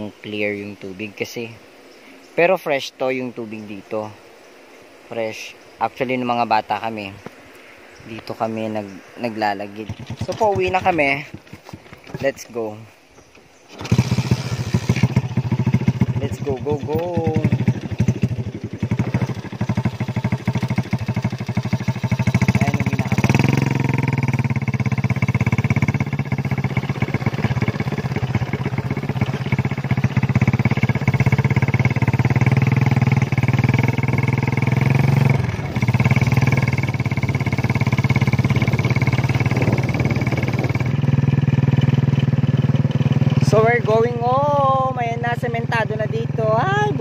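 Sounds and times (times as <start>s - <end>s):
small motorcycle engine running: 8.6s - 47.0s.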